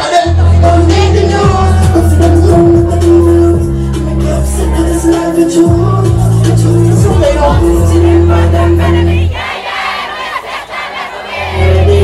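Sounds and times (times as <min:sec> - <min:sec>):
crowd singing and shouting: 0:00.0 - 0:12.0
party music with heavy bass: 0:00.0 - 0:12.0.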